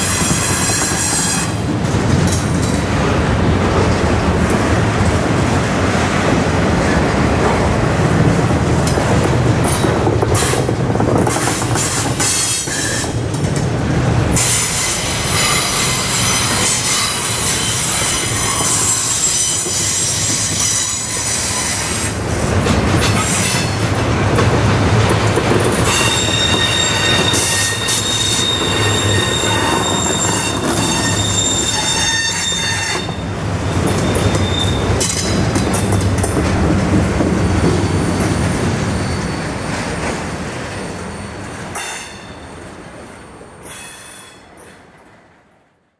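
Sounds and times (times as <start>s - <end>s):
train wheels rumbling on rail: 0.0s - 45.9s
high-pitched wheel squeal: 25.9s - 33.2s, 34.0s - 34.8s.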